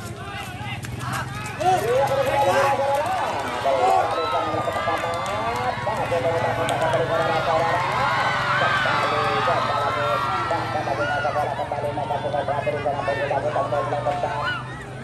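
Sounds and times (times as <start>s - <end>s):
crowd shouting: 0.0s - 15.0s.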